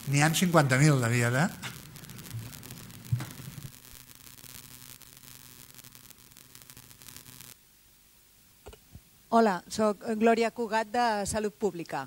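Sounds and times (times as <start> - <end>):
sound system electrical hum and hiss: 0.0 - 12.0.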